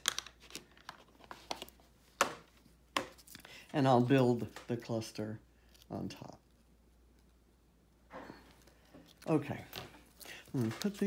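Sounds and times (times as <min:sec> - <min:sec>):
paper crinkling: 0:00.0 - 0:02.1, 0:08.6 - 0:11.0
paper rustling: 0:08.8 - 0:11.0.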